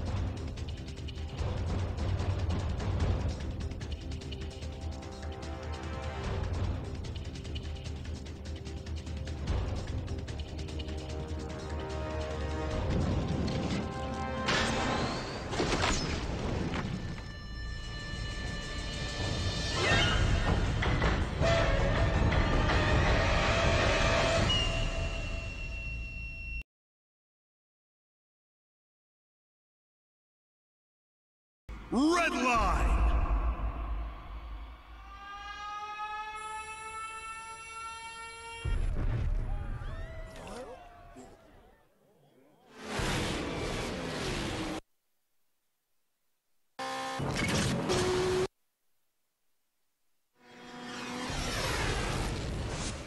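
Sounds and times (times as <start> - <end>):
dramatic trailer music: 0.0 - 15.6, 17.0 - 25.5.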